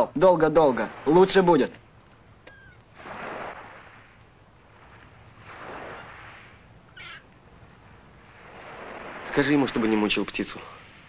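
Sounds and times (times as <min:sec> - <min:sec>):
waves washing ashore: 0:00.0 - 0:11.0
gull crying: 0:02.5 - 0:02.9, 0:06.9 - 0:07.3.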